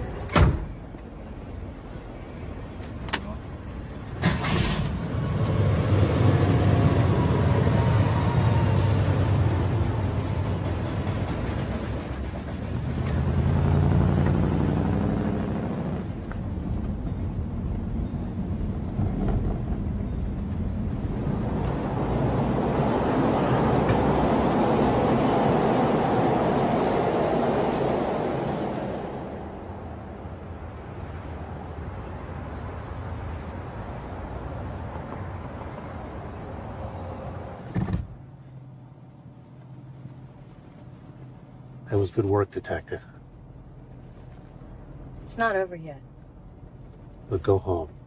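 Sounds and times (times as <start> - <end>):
car engine revving: 12.7 - 16.2
rushing noise: 18.4 - 32.0
car door shutting: 37.6 - 38.2.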